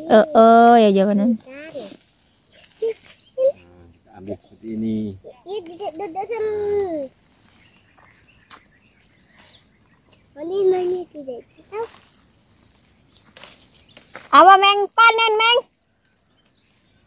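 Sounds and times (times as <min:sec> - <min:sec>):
insects buzzing: 0:00.0 - 0:17.0.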